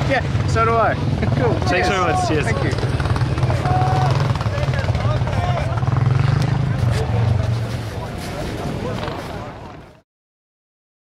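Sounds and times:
engine humming: 0.0 - 10.0
voices: 0.0 - 10.0.

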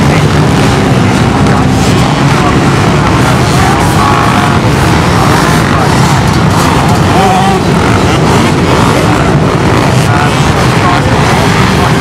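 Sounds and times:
motorcycle engine revving: 0.0 - 12.0
off-road motorcycles racing: 0.0 - 12.0.

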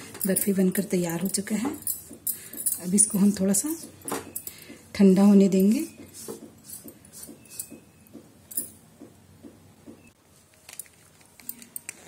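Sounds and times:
handling noises: 5.6 - 12.0.

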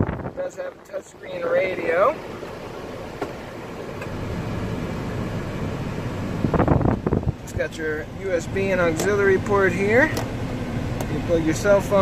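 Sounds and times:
truck cab rumble and hiss: 0.0 - 12.0.

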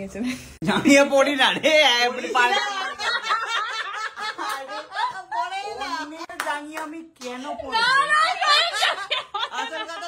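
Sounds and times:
people talking: 0.0 - 10.0
people laughing: 2.1 - 6.3, 7.8 - 10.0.

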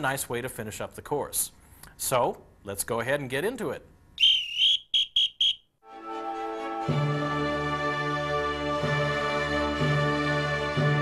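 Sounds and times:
short whistle toots: 4.2 - 5.7
high whistle: 4.2 - 5.8
music: 5.8 - 11.0.

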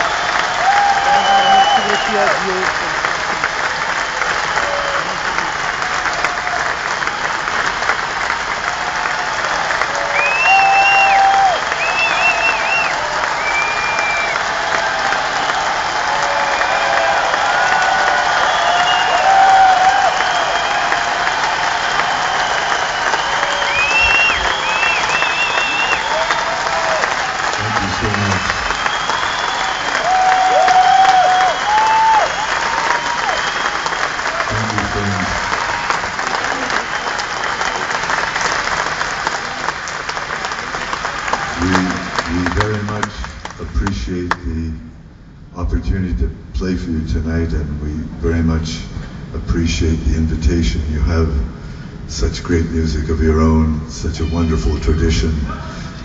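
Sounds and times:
whistles and cheers: 0.0 - 2.7, 3.7 - 39.8, 40.5 - 42.3
audience applauding: 0.0 - 44.4.

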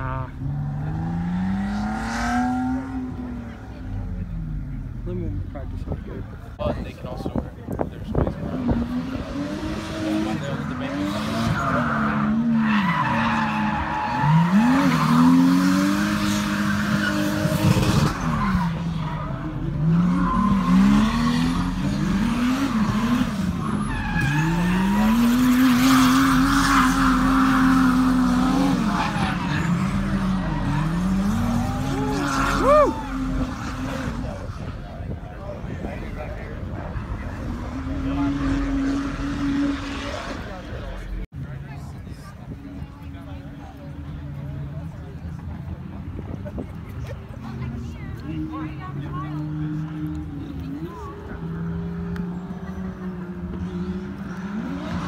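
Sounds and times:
car engine revving: 0.0 - 5.9, 8.1 - 41.3
tires squealing: 8.1 - 41.2.

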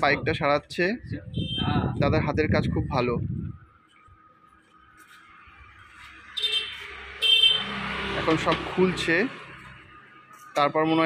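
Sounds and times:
electric horn blasts: 6.4 - 7.9.

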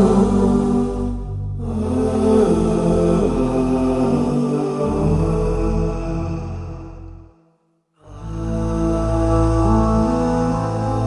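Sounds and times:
music with chant-like vocals: 0.0 - 11.0.

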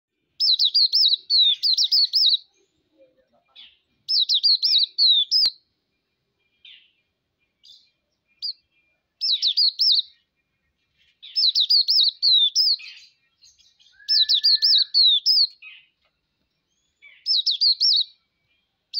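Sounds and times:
short bird chirps: 0.4 - 18.9
bird singing high notes: 11.3 - 15.6.

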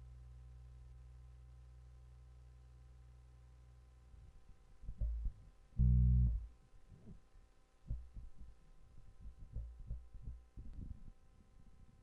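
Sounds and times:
faint steady hum: 0.0 - 12.0
low thuds and bumps: 4.9 - 5.4, 7.9 - 8.5.

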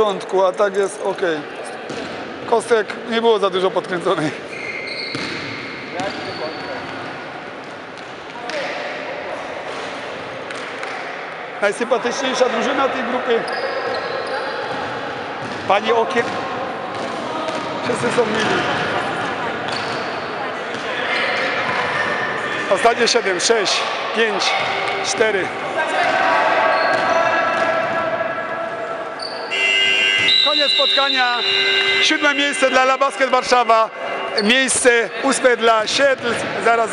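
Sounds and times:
voices echoing in hall: 0.0 - 36.9
ball bouncing on court: 1.9 - 2.3, 5.0 - 7.1, 14.7 - 19.0, 36.0 - 36.6
high-pitched buzzer: 29.5 - 34.8.

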